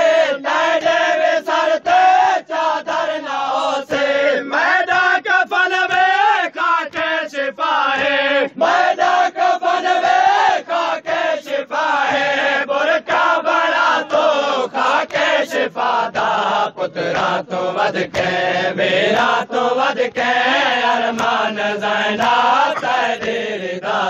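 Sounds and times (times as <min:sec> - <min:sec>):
men chanting a lament: 0:00.0 - 0:24.0.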